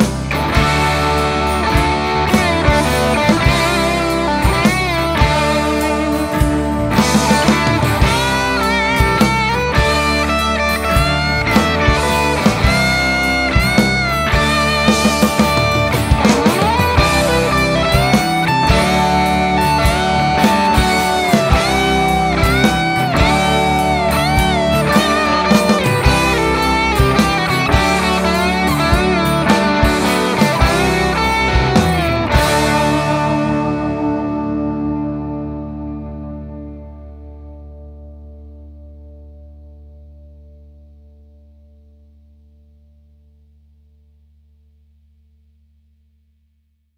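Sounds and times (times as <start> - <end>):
rock band playing: 0.0 - 39.0
distorted electric guitar lead: 0.0 - 43.5.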